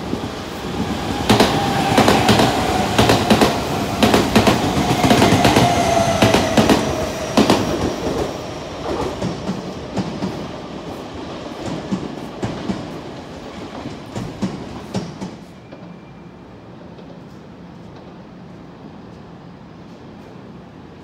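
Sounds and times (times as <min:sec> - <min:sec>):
distant train rumble and clicks: 0:00.0 - 0:16.0
train whine: 0:00.0 - 0:21.0.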